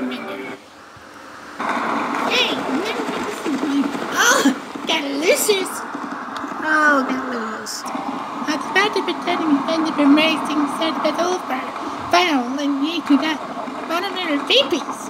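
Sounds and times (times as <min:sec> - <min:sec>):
steady hiss: 0:00.0 - 0:15.0
indistinct voice calls: 0:02.1 - 0:05.9.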